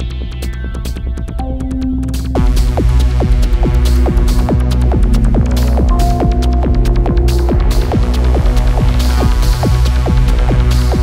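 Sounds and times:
throbbing bass drone: 0.0s - 11.0s
falling synth note: 5.9s - 9.0s.

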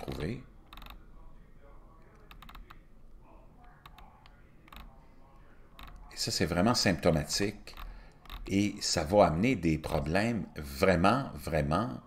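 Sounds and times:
low room hum: 0.0s - 12.0s
computer keyboard clicks: 0.1s - 1.0s, 2.2s - 2.8s, 3.7s - 5.0s, 5.8s - 6.1s, 7.7s - 8.5s.

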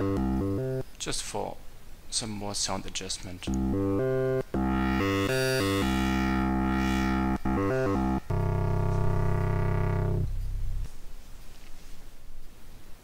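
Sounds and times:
buzzy synthesizer notes: 0.0s - 0.8s, 3.5s - 10.9s.

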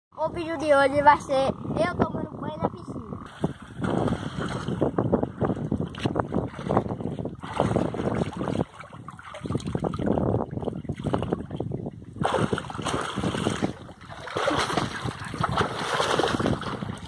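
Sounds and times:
water splashing from swimming: 5.9s - 11.6s, 12.2s - 17.0s.

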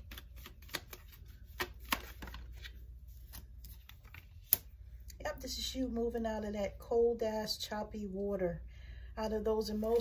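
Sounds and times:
cards being shuffled: 0.0s - 4.8s, 9.8s - 10.0s.

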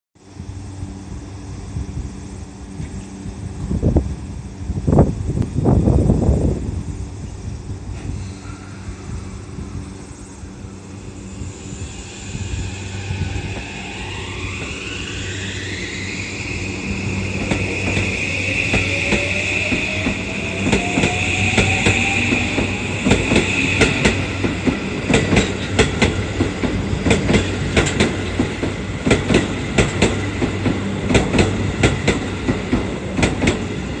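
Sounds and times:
electric train motor whine: 0.2s - 34.0s
train wheels clicking over rail joints: 17.4s - 34.0s.

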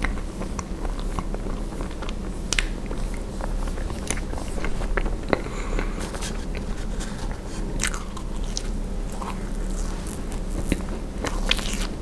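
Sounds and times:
mouth chewing sweet: 0.0s - 12.0s
sweet crackling when bitten: 6.6s - 12.0s.

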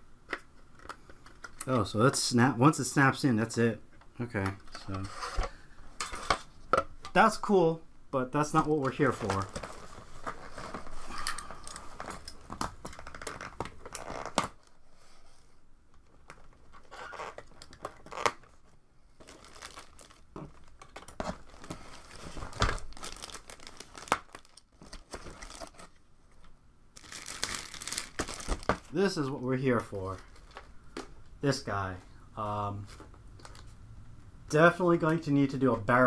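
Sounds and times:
plastic packaging crinkling: 16.0s - 18.6s, 19.2s - 26.0s, 27.0s - 28.9s.

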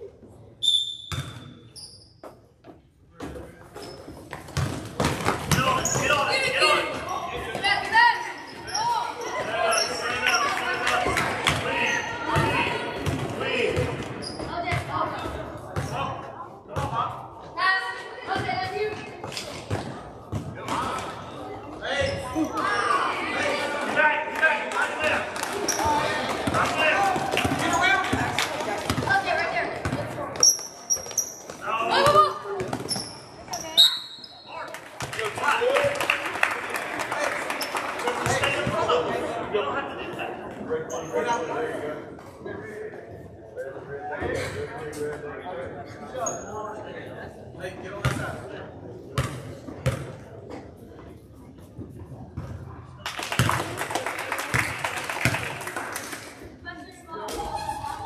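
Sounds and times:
basketball bouncing on court: 1.1s - 1.5s, 4.3s - 6.1s, 49.2s - 50.1s.

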